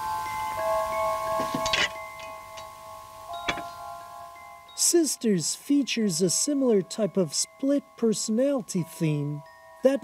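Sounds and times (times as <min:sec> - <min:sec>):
chime-like bell music: 0:00.0 - 0:10.0.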